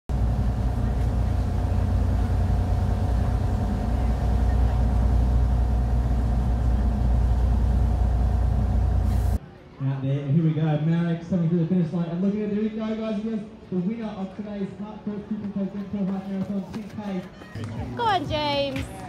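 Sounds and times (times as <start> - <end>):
boat engine humming: 0.1 - 9.4
steady tones: 0.1 - 9.4.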